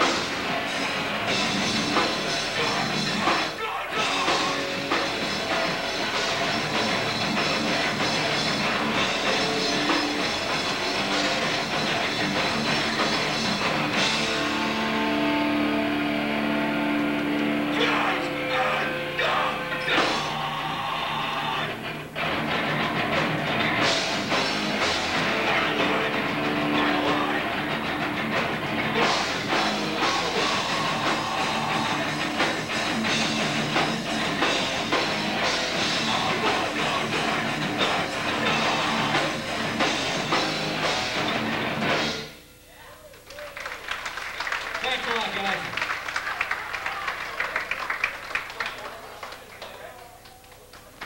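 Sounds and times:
drum kit: 0:00.0 - 0:42.4
punk band playing: 0:00.0 - 0:42.4
distorted electric guitars: 0:00.0 - 0:42.7.

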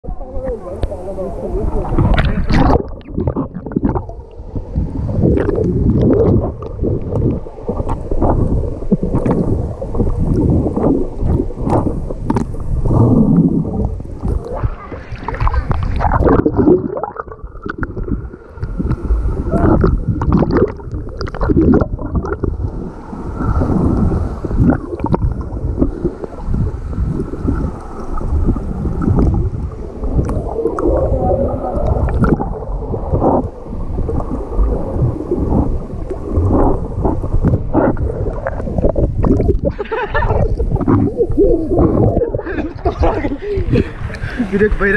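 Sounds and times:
churning water underwater: 0:00.0 - 0:44.9
bubbles: 0:01.6 - 0:44.9.

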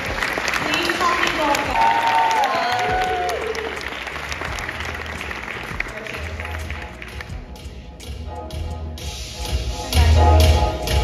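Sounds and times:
audience applauding: 0:00.0 - 0:07.5
music playing: 0:00.0 - 0:11.0.

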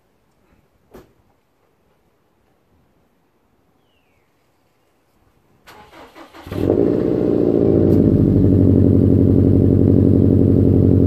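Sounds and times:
starter motor cranking engine: 0:05.7 - 0:08.7.

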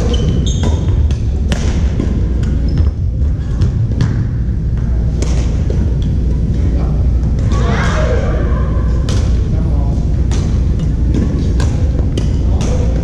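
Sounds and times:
low rumble in gym hall: 0:00.0 - 0:13.0.

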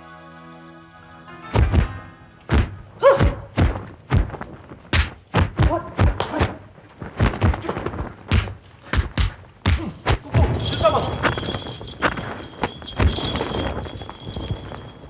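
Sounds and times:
punch and block impacts: 0:02.5 - 0:06.6, 0:07.2 - 0:11.0.

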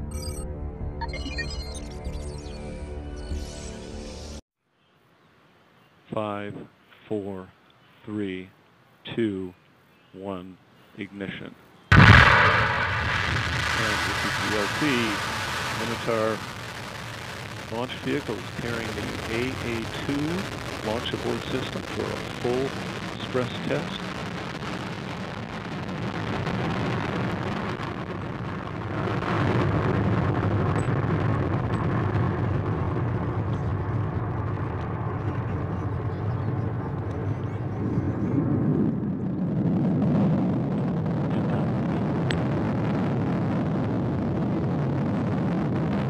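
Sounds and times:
rocket booster rumble: 0:11.9 - 0:46.0.

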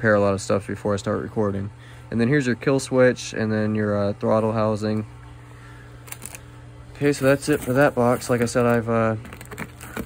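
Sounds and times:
steady low hum: 0:00.0 - 0:10.0
small parts and cardboard rustling: 0:06.0 - 0:10.0.

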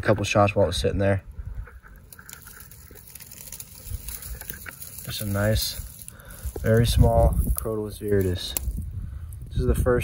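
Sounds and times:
rock scraping on stony ground: 0:01.5 - 0:08.9
small clicks of rock: 0:01.6 - 0:09.4.

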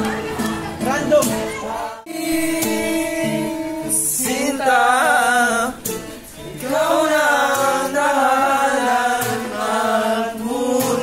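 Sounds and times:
voices singing a love song: 0:00.0 - 0:11.0.

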